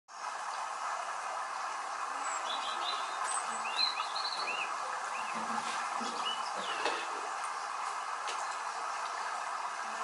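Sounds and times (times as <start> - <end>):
small birds chirping: 2.1 - 9.4.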